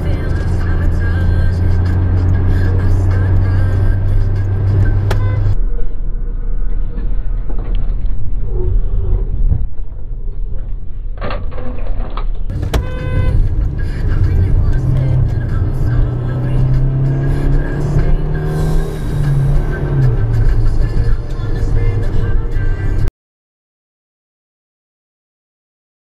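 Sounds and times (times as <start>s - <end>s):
car engine and road noise: 0.0s - 23.1s.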